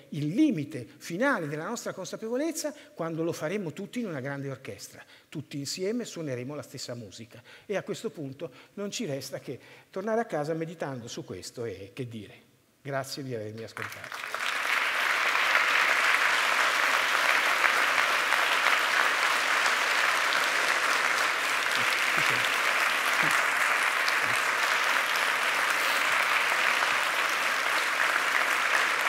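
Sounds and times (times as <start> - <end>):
large audience applauding: 13.8 - 29.0.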